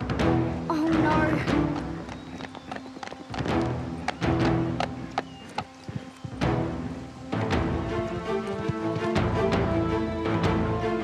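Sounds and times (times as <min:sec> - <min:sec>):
film background music: 0:00.0 - 0:11.0
horse hoofbeats on pavement: 0:00.1 - 0:06.7, 0:07.3 - 0:09.7.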